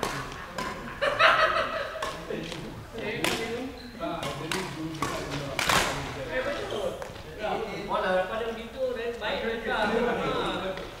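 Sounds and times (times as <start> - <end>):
racket striking shuttlecock: 0.0 - 0.9, 2.0 - 2.3, 4.2 - 6.0
players' voices: 0.0 - 11.0.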